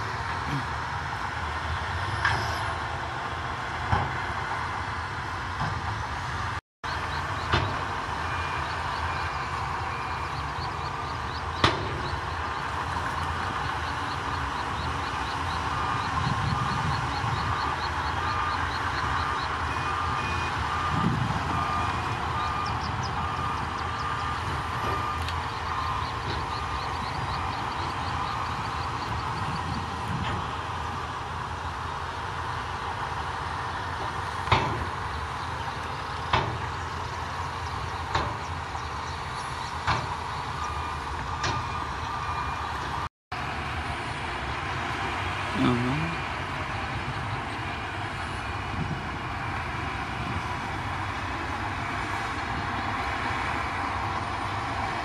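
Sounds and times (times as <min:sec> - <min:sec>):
bulldozer engines and tracks: 0:00.0 - 0:55.0
dump trucks: 0:00.0 - 0:55.0
reversing alarm beeping: 0:06.8 - 0:30.4, 0:37.7 - 0:43.1.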